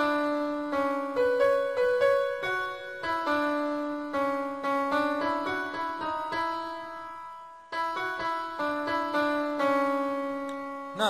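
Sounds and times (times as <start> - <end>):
slow piano melody on keyboard: 0.0 - 11.0.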